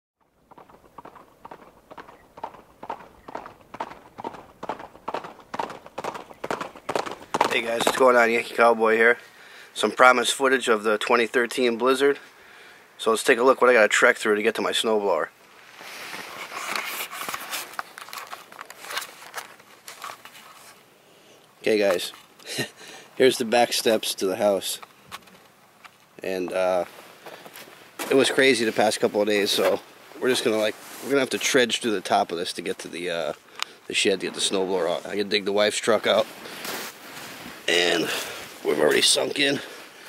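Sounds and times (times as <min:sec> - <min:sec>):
rhythmic footfalls: 0:00.5 - 0:08.2
camera rustling against jacket: 0:15.6 - 0:20.8, 0:24.8 - 0:31.6, 0:34.0 - 0:39.6.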